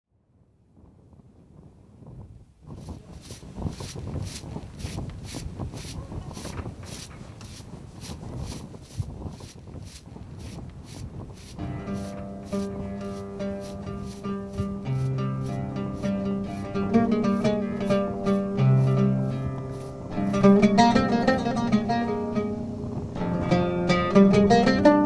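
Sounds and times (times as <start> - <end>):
broom sweeping rocky ground: 2.7 - 22.2
plucked-string music: 11.4 - 25.0.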